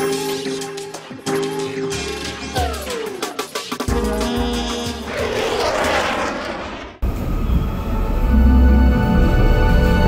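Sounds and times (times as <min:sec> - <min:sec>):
whoosh: 0:05.0 - 0:07.3.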